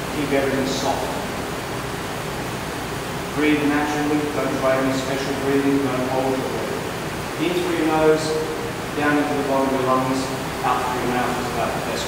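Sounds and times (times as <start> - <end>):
room noise hiss: 0.0 - 12.0.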